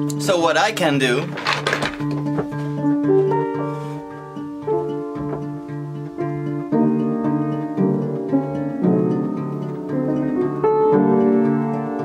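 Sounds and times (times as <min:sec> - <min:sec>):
fingerpicked classical guitar: 0:00.0 - 0:12.0.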